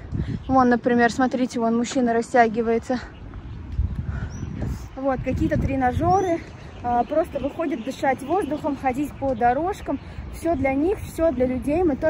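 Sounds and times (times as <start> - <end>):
wind rumble on microphone: 0.0 - 12.0
person breathing: 4.0 - 4.7.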